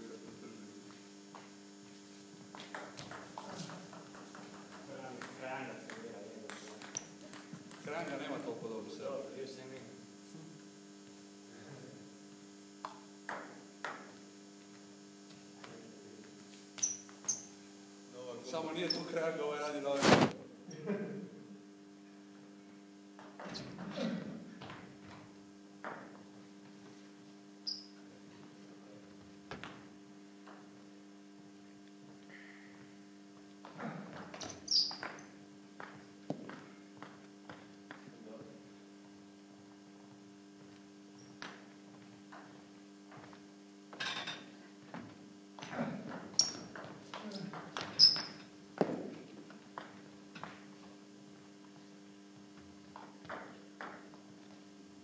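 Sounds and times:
steady low hum: 0.0s - 55.0s
table tennis ball bouncing: 2.5s - 8.6s, 12.8s - 14.2s, 25.8s - 26.2s, 33.6s - 38.1s, 45.6s - 50.7s, 53.0s - 54.2s
table tennis ball clicking: 2.6s - 8.5s
shoe squeak on wooden floor: 16.8s - 17.5s, 27.6s - 28.0s, 34.4s - 35.3s, 41.2s - 41.4s, 46.4s - 46.7s, 47.8s - 48.4s.

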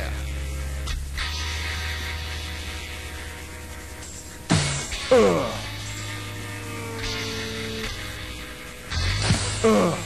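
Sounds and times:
electrical mains hum with hiss: 0.0s - 10.0s
lo-fi rock recording: 0.0s - 10.0s.

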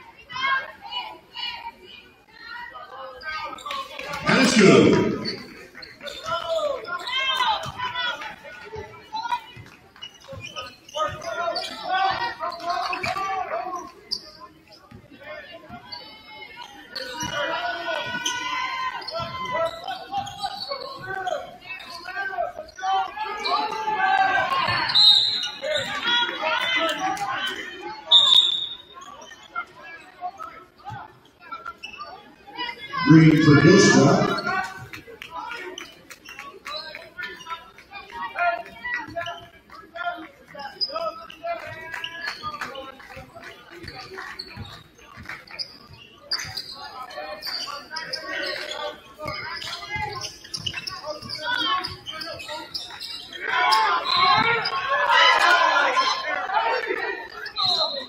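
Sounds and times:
people shouting and chatting: 0.0s - 58.0s.

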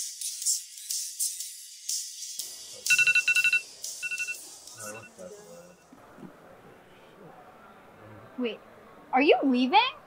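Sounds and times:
music: 0.0s - 5.8s
phone ringtone trill: 2.9s - 5.1s.

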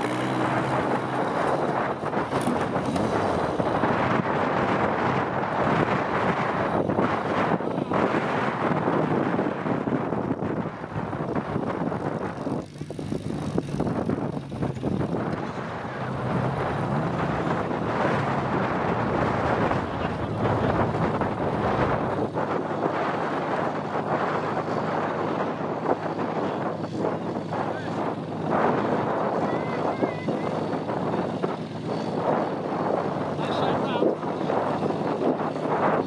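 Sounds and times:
car engine under load: 0.0s - 36.0s
wind buffeting microphone: 0.0s - 36.0s.

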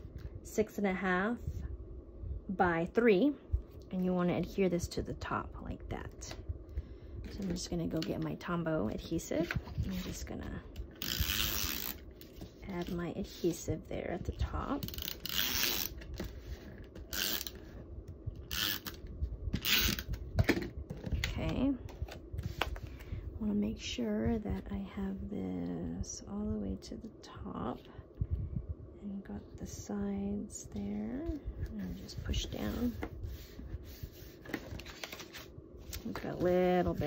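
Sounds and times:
hands smoothing paper on card: 31.8s - 35.4s.

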